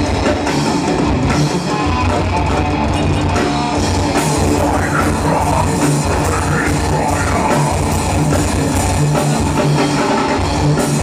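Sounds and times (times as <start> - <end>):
bass guitar: 0.0 - 11.0
distorted electric guitars: 0.0 - 11.0
drum kit: 0.0 - 11.0.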